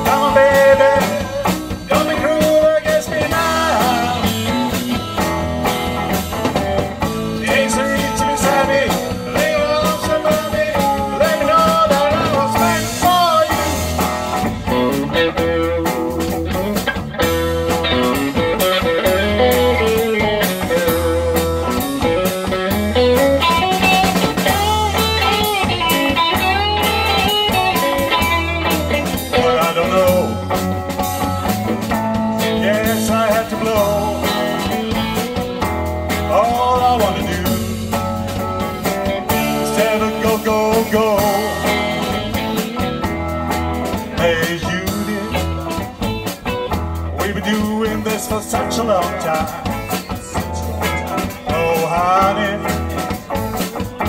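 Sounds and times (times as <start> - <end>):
bass guitar: 0.0 - 54.0
drum kit: 0.0 - 54.0
lead electric guitar: 0.0 - 54.0.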